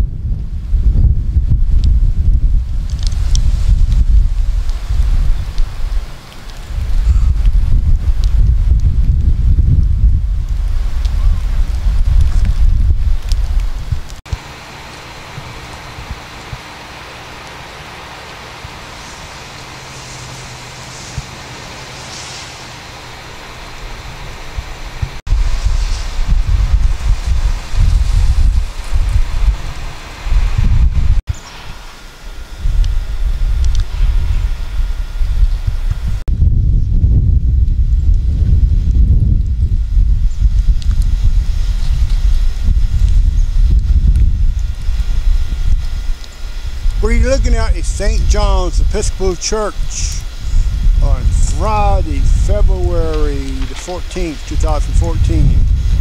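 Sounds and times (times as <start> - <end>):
wind buffeting microphone: 0.0 - 14.4, 18.6 - 56.0
steady low hum: 0.0 - 56.0.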